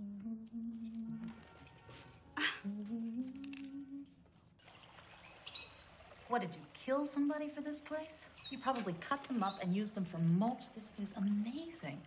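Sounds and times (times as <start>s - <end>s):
person humming: 0.0s - 1.5s, 2.4s - 4.2s.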